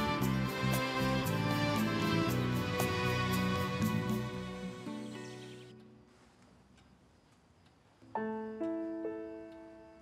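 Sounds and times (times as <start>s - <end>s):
soft piano notes: 8.0s - 10.0s.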